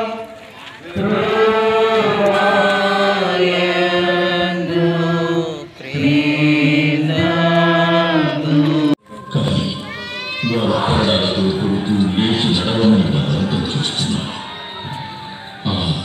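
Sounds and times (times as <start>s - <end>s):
slow hymn singing: 0.0s - 12.7s.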